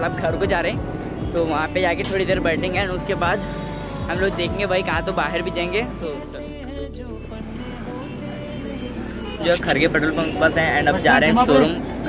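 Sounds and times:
scooters and motorcycles running: 0:00.0 - 0:06.1, 0:08.1 - 0:12.0
background music: 0:00.0 - 0:12.0
road traffic: 0:00.0 - 0:12.0.

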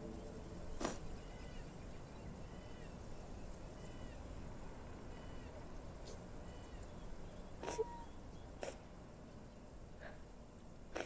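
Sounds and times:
faint animal calls: 0:05.1 - 0:08.8.

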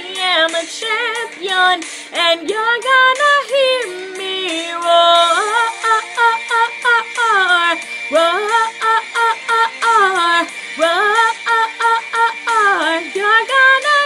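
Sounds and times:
pop backing track with beat: 0:00.0 - 0:14.0
woman singing wordless vocal: 0:00.0 - 0:14.0.

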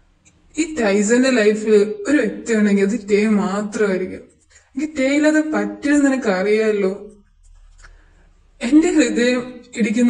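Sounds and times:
person narrating: 0:00.6 - 0:07.1, 0:08.6 - 0:10.0.

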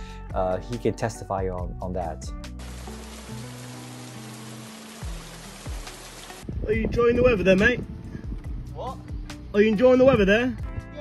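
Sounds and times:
steady rain falling: 0:02.6 - 0:06.5.

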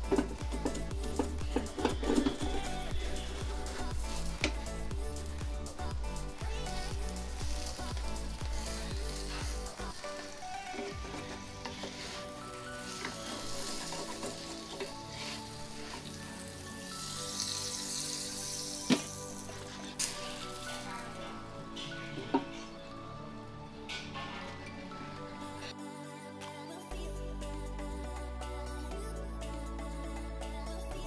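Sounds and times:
batter sizzling in a pan: 0:06.4 - 0:21.6.

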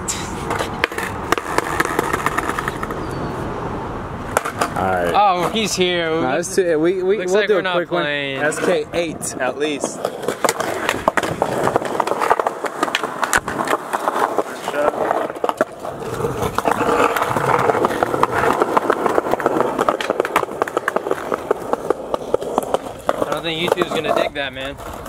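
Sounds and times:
skateboard wheels rolling on concrete: 0:00.0 - 0:25.0
skateboard clacks and knocks: 0:00.4 - 0:03.1, 0:04.3 - 0:05.8, 0:08.4 - 0:25.0.

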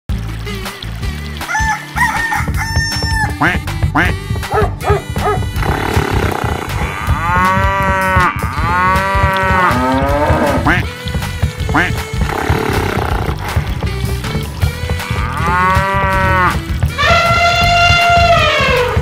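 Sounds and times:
children's music with bass beat: 0:00.1 - 0:19.0
cartoon chicken and rooster calls: 0:01.5 - 0:03.4.

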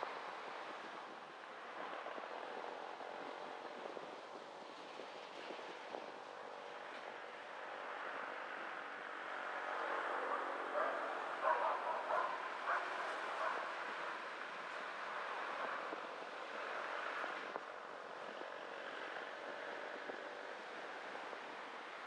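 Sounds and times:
car driving slowly: 0:00.0 - 0:22.0.

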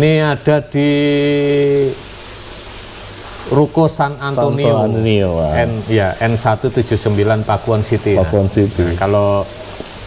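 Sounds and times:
low background hiss: 0:00.0 - 0:10.0
man's drawn-out hesitation vowel: 0:04.4 - 0:05.1.

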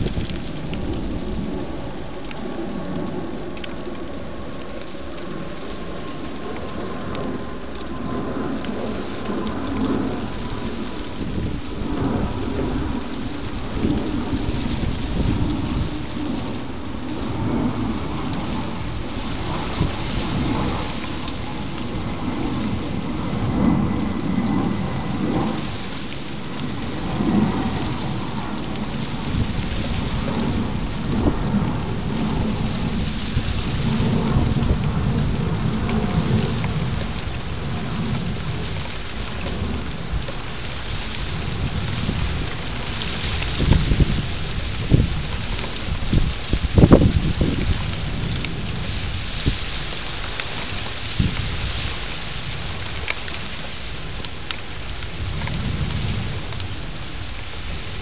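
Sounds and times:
steady rain hiss: 0:00.0 - 0:58.0.

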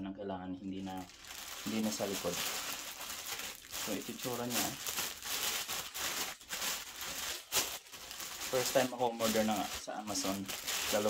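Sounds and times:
plastic bag crinkling: 0:00.8 - 0:11.0.

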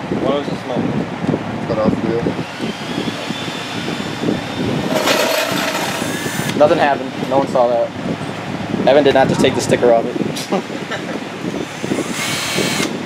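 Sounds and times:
cordless drill motor whine: 0:02.4 - 0:06.6, 0:11.6 - 0:13.0.

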